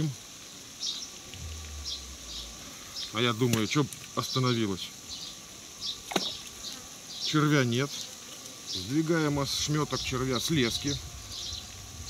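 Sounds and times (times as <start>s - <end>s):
low steady hum: 1.2s - 3.3s.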